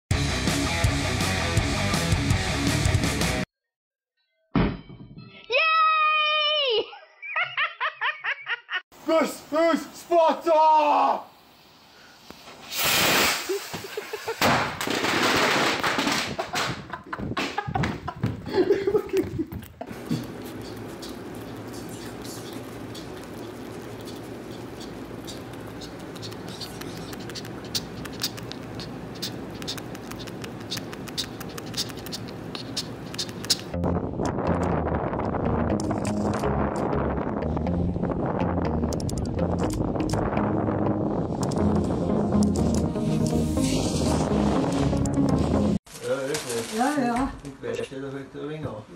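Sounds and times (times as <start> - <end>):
person shouting in celebration: 5.5 - 6.9
squirrel chewing with crisp crunches: 19.2 - 33.8.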